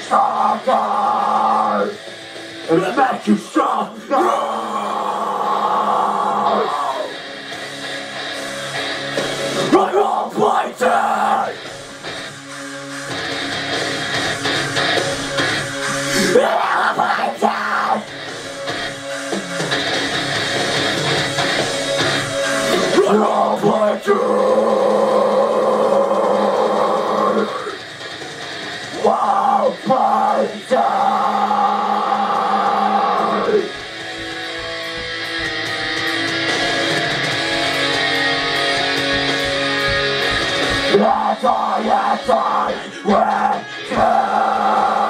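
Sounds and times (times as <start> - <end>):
harsh screamed vocal: 0.0 - 2.0, 2.7 - 7.3, 9.6 - 11.6, 16.1 - 18.1, 22.7 - 27.9, 28.9 - 34.1, 40.6 - 45.0
person singing: 0.0 - 2.0, 2.7 - 7.2, 9.6 - 11.6, 16.1 - 18.0, 22.7 - 27.8, 29.0 - 33.8, 39.0 - 45.0
heavy rock music: 0.0 - 45.0.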